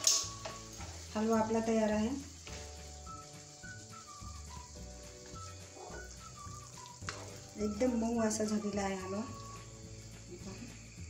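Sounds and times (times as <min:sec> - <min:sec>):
wooden spatula stirring in pan: 0:00.0 - 0:10.4
food sizzling in oil: 0:00.0 - 0:11.0
soft background music: 0:00.0 - 0:11.0.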